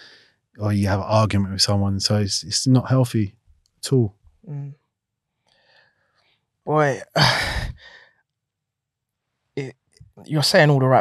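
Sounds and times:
faint breath: 0:05.5 - 0:06.0, 0:07.2 - 0:08.1
person sighing deeply: 0:07.0 - 0:08.0.

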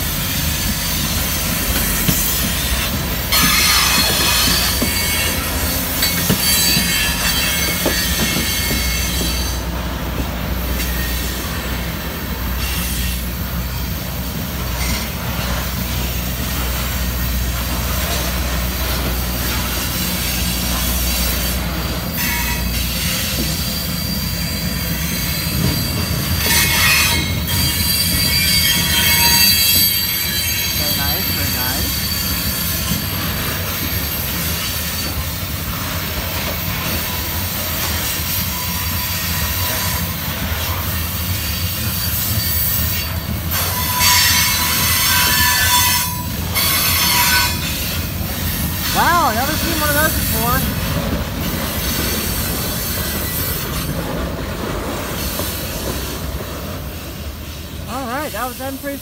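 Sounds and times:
train wheels squealing: 0:00.0 - 0:09.8, 0:10.5 - 0:57.8
freight train cars rumbling: 0:00.0 - 0:59.0.

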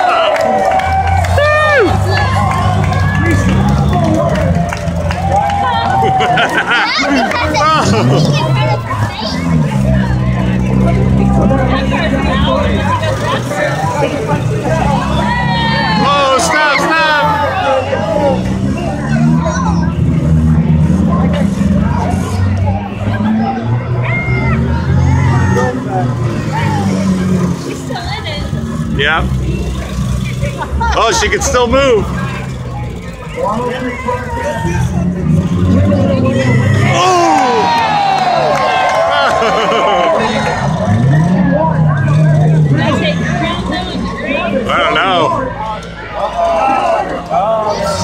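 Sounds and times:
car engines running: 0:00.0 - 0:48.0
crowd voices: 0:00.0 - 0:48.0
spectators chatting: 0:00.0 - 0:48.0.

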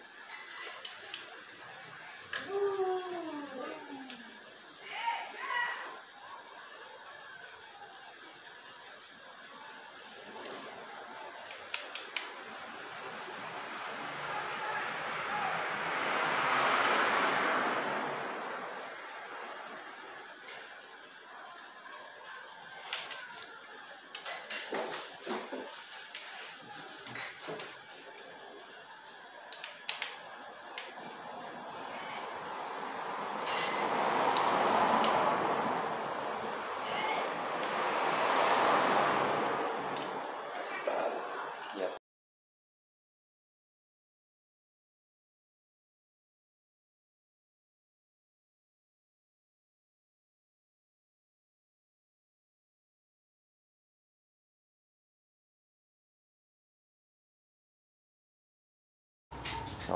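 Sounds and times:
rushing noise: 0:12.3 - 0:20.4, 0:30.4 - 0:41.7.

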